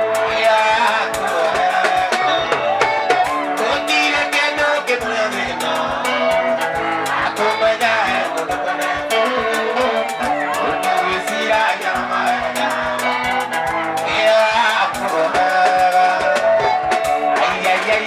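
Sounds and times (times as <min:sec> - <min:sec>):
electric guitar: 0:00.0 - 0:18.0
fast drum beat: 0:00.0 - 0:18.0
man singing: 0:00.0 - 0:18.0.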